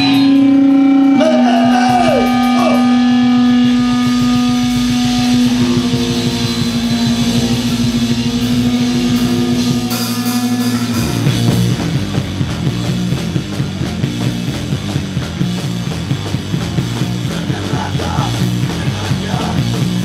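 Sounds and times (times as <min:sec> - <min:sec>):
punk band playing live: 0:00.0 - 0:20.0.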